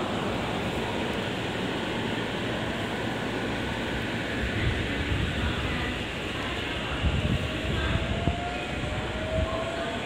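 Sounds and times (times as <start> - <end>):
wheels rumbling on rails: 0.0 - 10.0.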